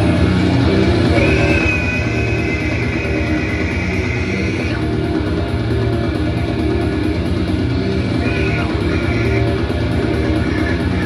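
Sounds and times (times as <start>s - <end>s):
distorted electric guitar: 0.0s - 11.0s
live heavy metal band: 0.0s - 11.0s.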